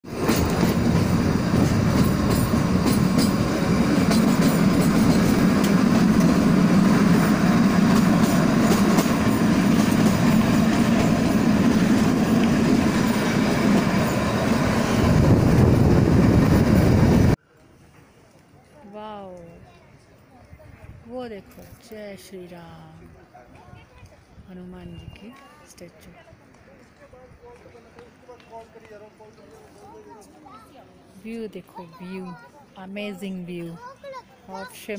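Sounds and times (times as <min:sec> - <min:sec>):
train wheels rumbling on rails: 0:00.0 - 0:17.4.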